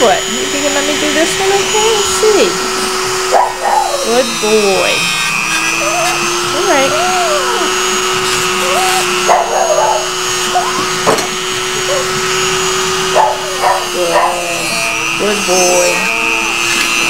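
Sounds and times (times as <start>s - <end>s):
electric clipper humming: 0.0s - 17.0s
dog whining: 3.0s - 4.2s, 5.5s - 15.0s.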